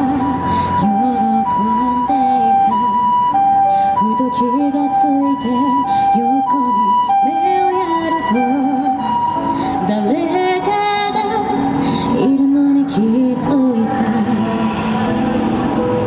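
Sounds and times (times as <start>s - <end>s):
woman singing a ballad: 0.0s - 14.6s
two-tone ambulance siren: 0.0s - 16.0s
backing music: 7.0s - 16.0s.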